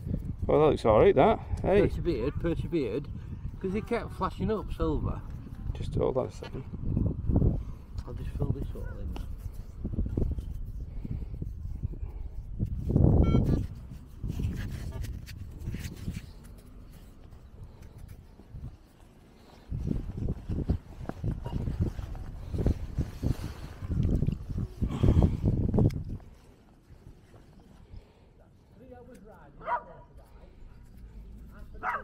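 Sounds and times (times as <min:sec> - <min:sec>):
wind rumbling on microphone: 0:00.0 - 0:28.2.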